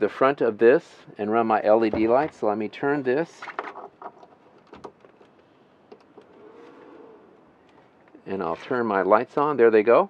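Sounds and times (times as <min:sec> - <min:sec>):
faint hum: 0:05.2 - 0:09.8.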